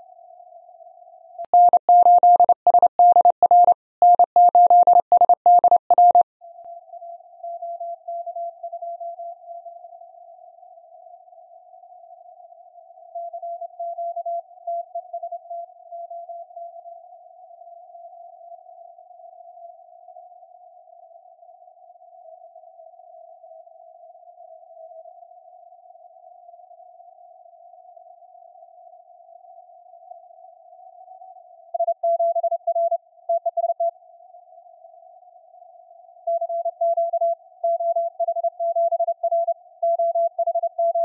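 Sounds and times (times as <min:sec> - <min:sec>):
morse code beeps: 0:01.6 - 0:06.2.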